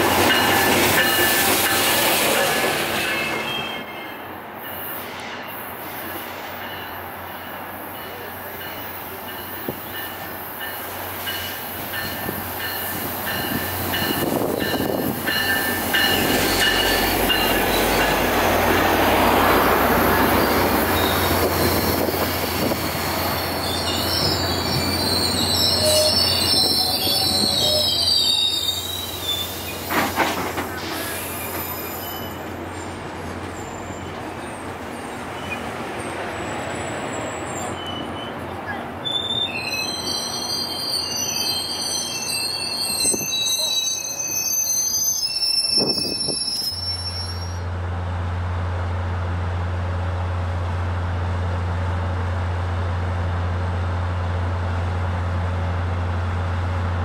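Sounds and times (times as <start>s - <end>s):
train wheels squealing: 0.0s - 18.4s, 19.3s - 47.7s
train low drone: 47.6s - 57.0s.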